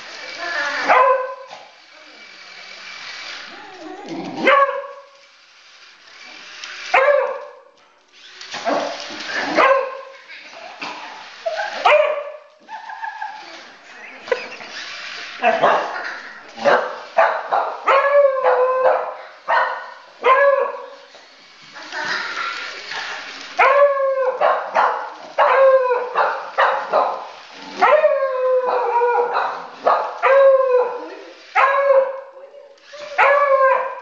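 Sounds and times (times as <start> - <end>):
dogs barking: 15.5 - 20.8, 23.6 - 28.1, 28.8 - 30.4.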